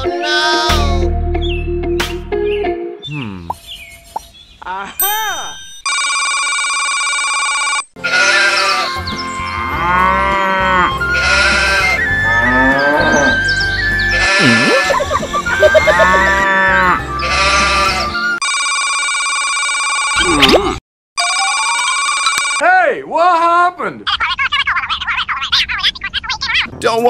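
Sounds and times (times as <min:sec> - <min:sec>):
bouncy ringtone tune with bass: 0:05.0 - 0:05.8, 0:14.2 - 0:16.4
sheep-like bleats: 0:08.0 - 0:09.0, 0:09.7 - 0:13.4, 0:14.1 - 0:18.1.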